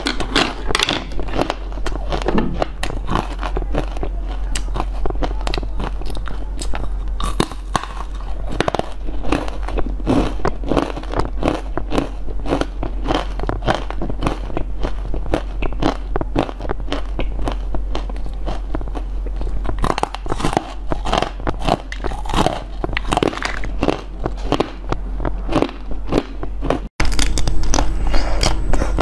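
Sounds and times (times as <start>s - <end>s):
crunching and chewing: 0.0s - 29.0s.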